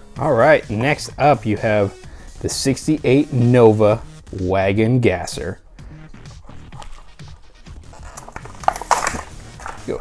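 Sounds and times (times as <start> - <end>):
plastic blister pack crinkling: 6.4 - 10.0.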